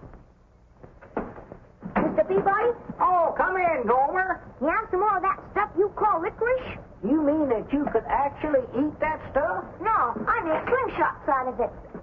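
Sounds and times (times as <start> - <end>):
film soundtrack hum and hiss: 0.0 - 12.0.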